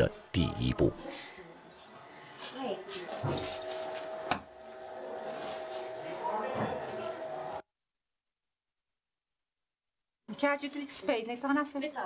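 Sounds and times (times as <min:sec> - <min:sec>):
voices talking: 0:00.0 - 0:03.6.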